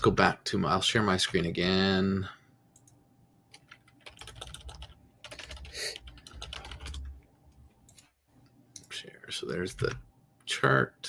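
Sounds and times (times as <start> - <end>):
computer keyboard typing: 2.8 - 8.1.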